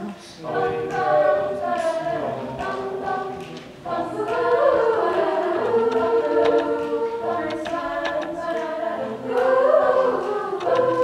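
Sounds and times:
a cappella group singing chords: 0:00.0 - 0:11.0
lead singer's voice: 0:00.0 - 0:11.0
short sharp ticks: 0:10.6 - 0:11.0.

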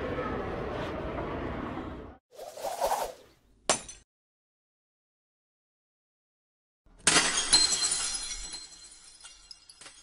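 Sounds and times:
glass shards tinkling: 0:07.0 - 0:10.0
glass shattering: 0:07.0 - 0:10.0.

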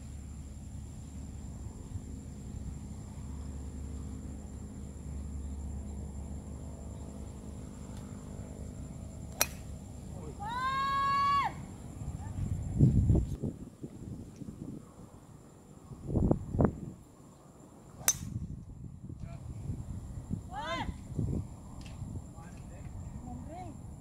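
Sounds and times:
golf driver striking ball: 0:09.4 - 0:09.7, 0:18.0 - 0:18.4.

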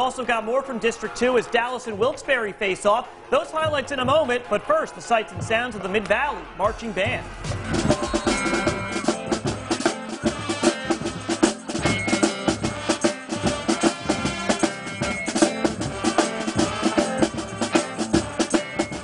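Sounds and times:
drumline beating fast rhythm: 0:00.9 - 0:19.0
brass horns: 0:02.3 - 0:19.0.

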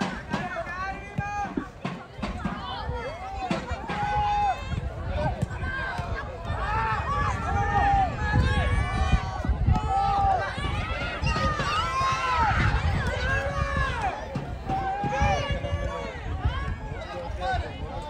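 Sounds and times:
voices shouting over one another: 0:00.0 - 0:18.0.

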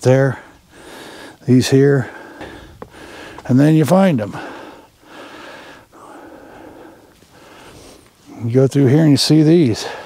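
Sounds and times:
person breathing: 0:00.3 - 0:01.4, 0:02.0 - 0:03.5, 0:04.2 - 0:08.4.

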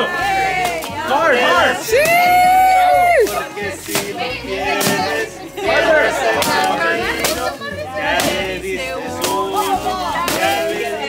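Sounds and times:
background music: 0:00.0 - 0:11.0
voices: 0:00.0 - 0:11.0
stick whacking a pinata: 0:00.6 - 0:00.9, 0:03.2 - 0:05.2, 0:06.3 - 0:08.5, 0:09.2 - 0:10.8.

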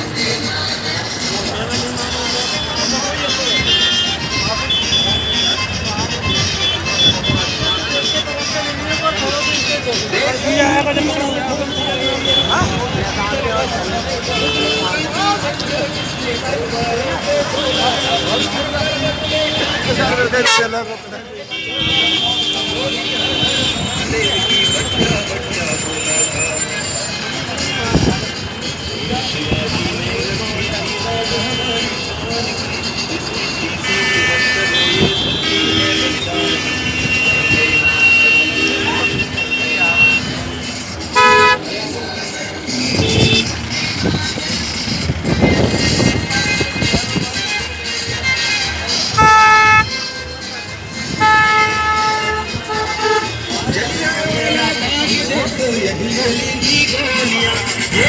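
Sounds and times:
crowd hubbub: 0:00.0 - 0:58.0
vehicle horns tooting: 0:02.4 - 0:09.9, 0:10.6 - 0:13.0, 0:14.2 - 0:16.4, 0:17.4 - 0:43.8, 0:45.6 - 0:55.2
vehicle horn honking: 0:03.4 - 0:08.3, 0:14.3 - 0:15.0, 0:20.3 - 0:20.8, 0:21.5 - 0:25.2, 0:33.7 - 0:41.7, 0:42.8 - 0:43.5, 0:49.2 - 0:50.3, 0:51.0 - 0:53.8.

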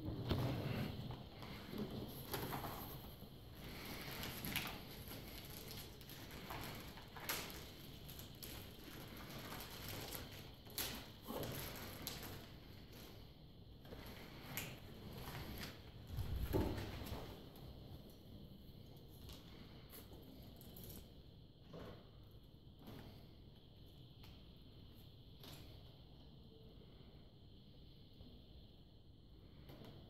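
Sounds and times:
rustling of plastic packaging: 0:01.4 - 0:13.1.

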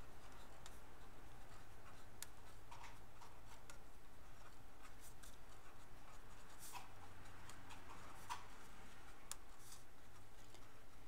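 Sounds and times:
low steady hum: 0:00.0 - 0:11.0
pen scratching on paper: 0:00.2 - 0:10.4.

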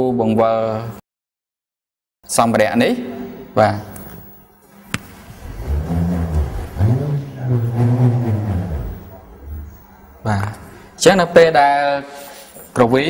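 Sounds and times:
bullroarer humming: 0:05.2 - 0:09.8.

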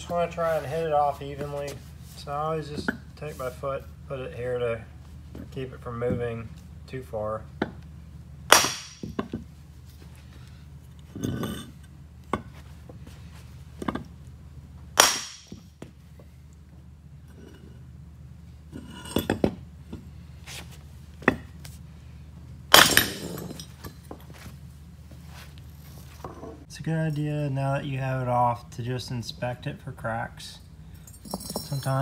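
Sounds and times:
sledgehammer clanking on metal: 0:11.1 - 0:12.5
light metallic clinks: 0:31.0 - 0:32.0.

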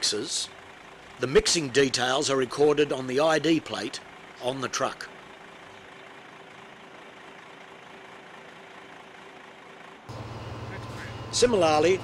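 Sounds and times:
heavy diesel machinery droning: 0:00.0 - 0:12.0.

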